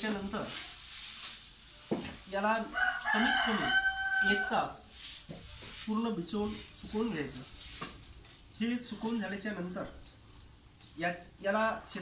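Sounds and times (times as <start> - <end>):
rooster crowing: 2.6 - 4.9.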